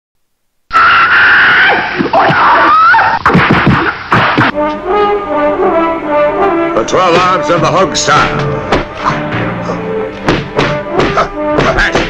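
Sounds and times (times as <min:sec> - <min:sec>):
high scream-like cry: 0:00.7 - 0:03.2.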